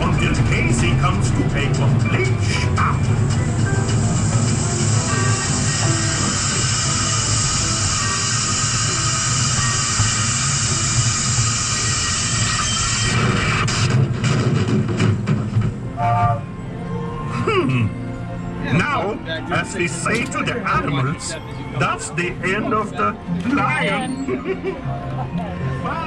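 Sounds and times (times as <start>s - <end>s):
music playing: 0.0s - 26.0s
ride train rumbling: 0.0s - 26.0s
steady hiss: 4.2s - 12.5s.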